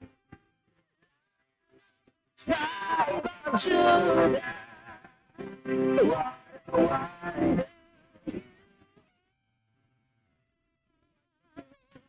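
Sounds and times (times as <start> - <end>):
woman singing worship song: 2.4 - 5.1.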